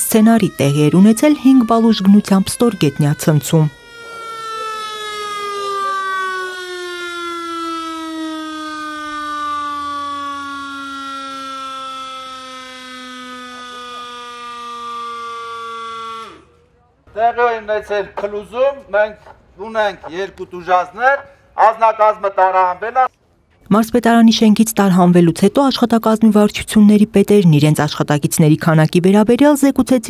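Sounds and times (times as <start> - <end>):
siren falling tone: 0.0 - 16.6.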